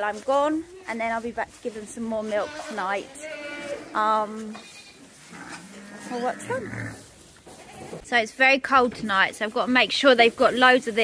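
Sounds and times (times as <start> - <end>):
barn noise: 0.0 - 11.0
farm animal call wavering: 5.2 - 7.0.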